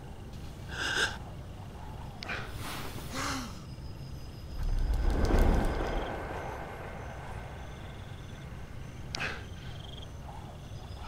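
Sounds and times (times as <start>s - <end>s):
deep low rumble: 4.4s - 9.2s.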